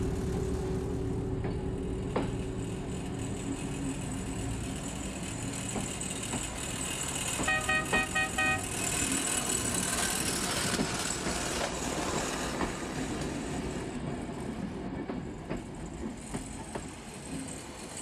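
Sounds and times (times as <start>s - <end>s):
rail cart engine running: 0.0s - 18.0s
horn short toots: 7.4s - 8.7s.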